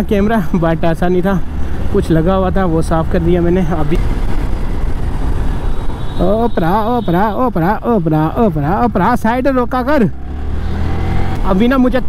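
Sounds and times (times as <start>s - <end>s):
motorcycle road noise: 0.0s - 12.0s.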